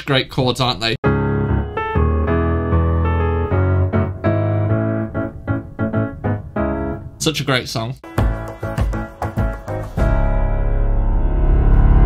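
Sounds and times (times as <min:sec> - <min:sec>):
digital piano chords: 0:01.0 - 0:12.0.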